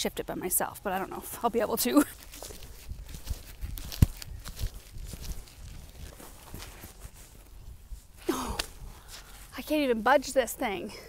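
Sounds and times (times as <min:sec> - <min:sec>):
tree stump scuffing on soil: 0:01.2 - 0:08.2.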